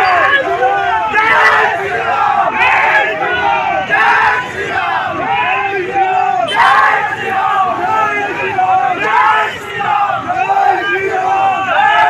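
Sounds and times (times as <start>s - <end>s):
crowd of men shouting: 0.0s - 12.0s.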